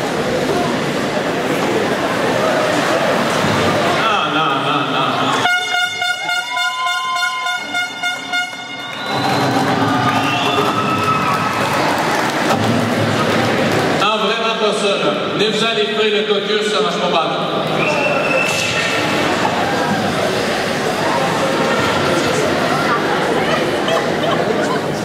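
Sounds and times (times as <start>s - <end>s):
horn blast: 5.3s - 10.8s
voices: 13.1s - 25.0s.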